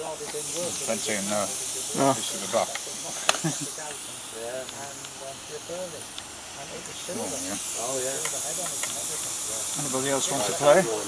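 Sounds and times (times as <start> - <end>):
steam locomotive hissing: 0.0 - 11.0.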